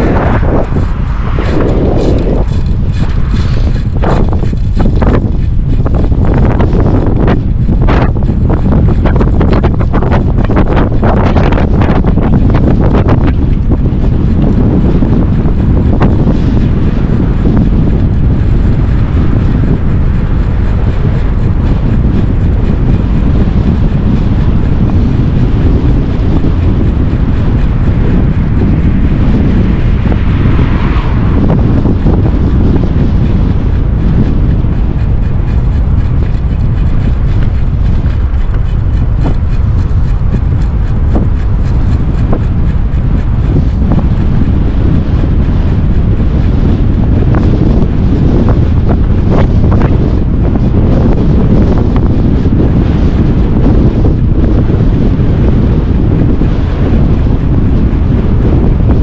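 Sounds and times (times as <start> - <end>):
car passing: 0.0 - 4.8, 27.7 - 34.7
wind buffeting microphone: 0.0 - 59.0.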